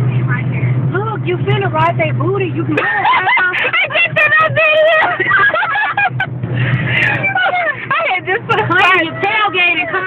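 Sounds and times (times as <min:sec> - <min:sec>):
car engine and road noise: 0:00.0 - 0:10.0
voices talking: 0:00.9 - 0:05.4, 0:06.9 - 0:10.0.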